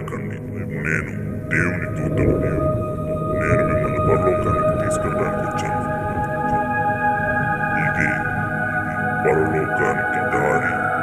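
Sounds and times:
dramatic music with held tones: 0.0 - 11.0
low rumbling noise: 0.0 - 11.0.

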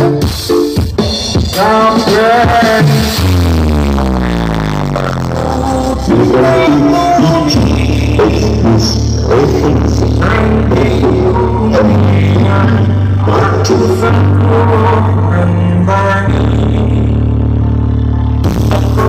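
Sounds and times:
loud music through speakers: 0.0 - 19.0.

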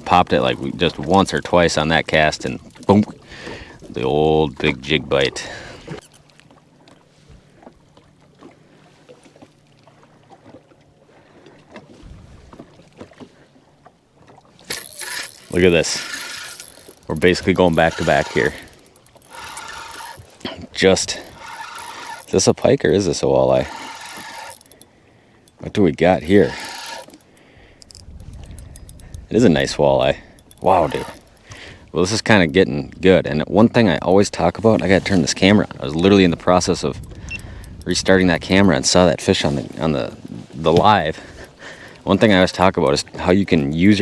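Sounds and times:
water lapping against boat hull: 0.0 - 44.0
fishing reel clicking: 5.9 - 6.4, 14.6 - 25.6, 26.2 - 31.6, 36.7 - 38.2.

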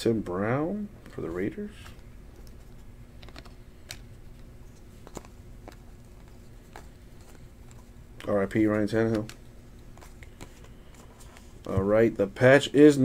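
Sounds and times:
faint low hum: 0.0 - 13.0
trading cards flipping clicks: 1.8 - 11.8.

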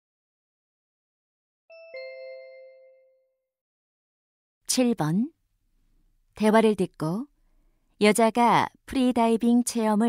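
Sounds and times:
two-note descending electronic chime: 1.7 - 3.4.

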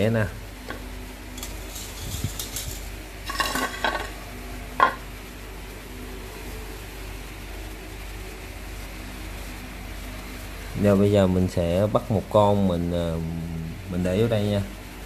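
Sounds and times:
faint steady hum: 0.0 - 15.0
plate scraping on stone floor: 0.7 - 4.2, 4.8 - 5.1.

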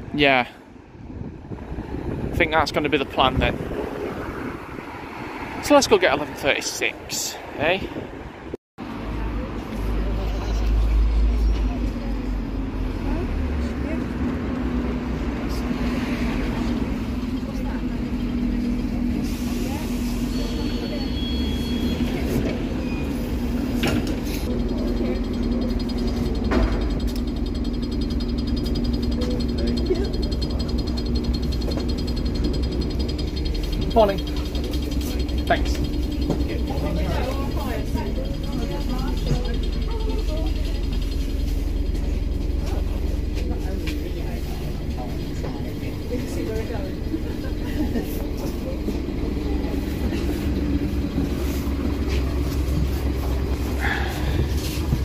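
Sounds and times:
people talking: 2.3 - 3.6, 5.6 - 7.9, 9.1 - 15.7, 16.5 - 23.2, 24.5 - 55.0
bus diesel engine idling: 8.8 - 55.0.

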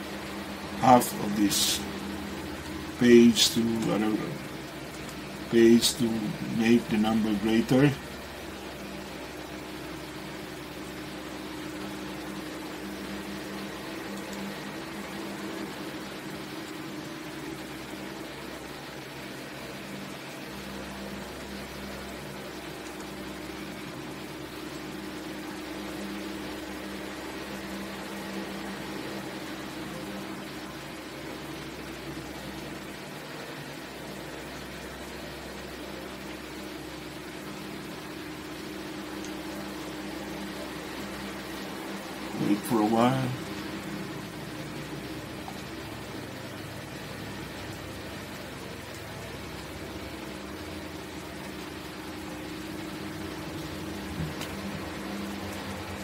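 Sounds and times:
low machine drone: 0.0 - 56.0
steady hiss: 0.0 - 56.0.

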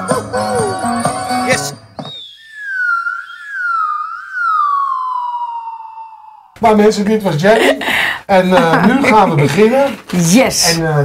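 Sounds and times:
siren-like whistling tone: 2.0 - 6.6.

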